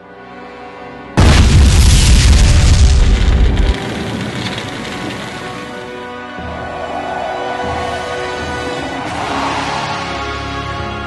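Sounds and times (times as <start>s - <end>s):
explosion boom with deep rumble: 1.2s - 5.7s.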